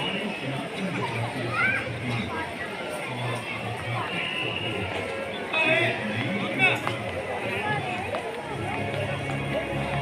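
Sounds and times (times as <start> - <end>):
crowd talking: 0.0 - 10.0.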